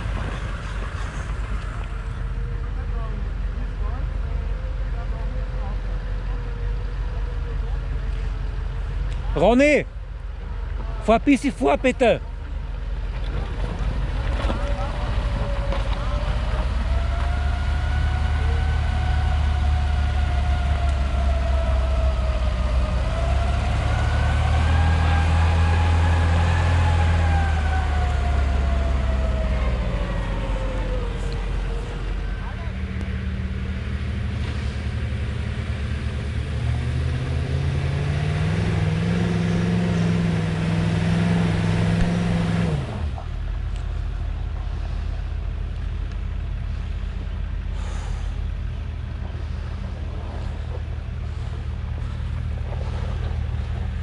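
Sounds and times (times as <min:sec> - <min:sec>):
deep steady engine note: 0:00.0 - 0:54.0
drivetrain whine: 0:00.0 - 0:54.0
off-road vehicle engines running: 0:00.0 - 0:54.0.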